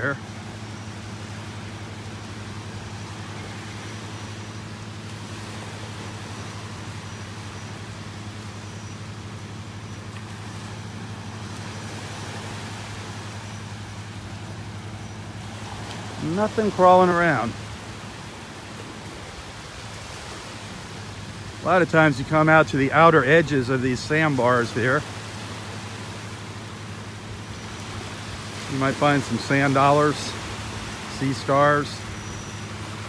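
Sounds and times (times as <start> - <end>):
surf washing over sand: 0.0 - 33.0.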